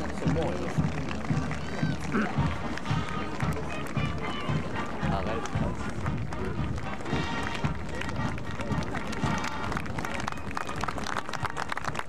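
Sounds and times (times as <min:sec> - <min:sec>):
band music: 0:00.0 - 0:12.0.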